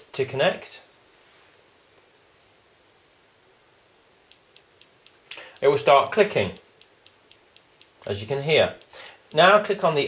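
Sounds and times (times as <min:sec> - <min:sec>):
faint regular sensor clicking: 0:04.2 - 0:10.0.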